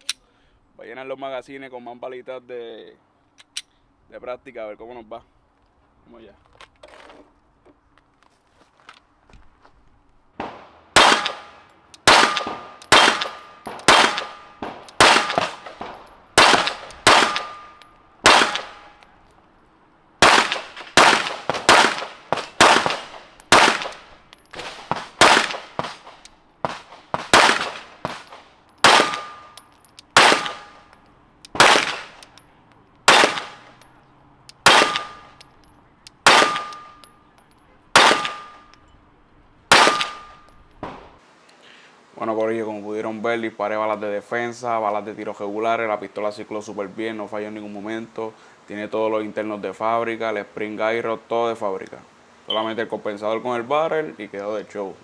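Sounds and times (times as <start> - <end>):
pistol shots: 10.4 - 19.0, 20.2 - 24.0, 24.6 - 29.6, 30.2 - 30.9, 31.5 - 32.3, 33.1 - 33.8, 34.6 - 35.4, 36.2 - 37.0, 37.9 - 38.6, 39.7 - 40.4.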